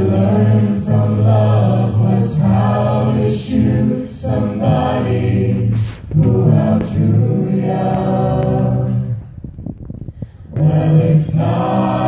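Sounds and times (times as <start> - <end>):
a cappella group singing: 0.0 - 9.4, 10.4 - 12.0.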